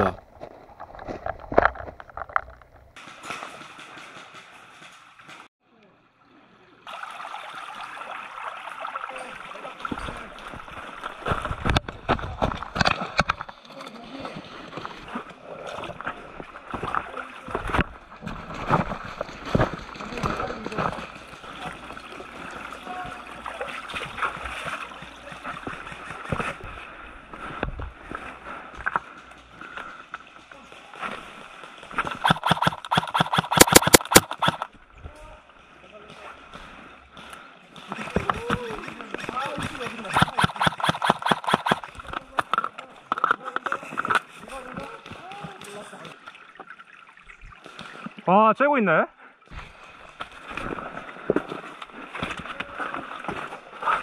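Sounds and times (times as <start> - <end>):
footsteps splashing in stream: 3.0 - 5.5, 7.0 - 34.9, 35.7 - 48.3, 49.5 - 54.0
creek running over stones: 6.8 - 54.0.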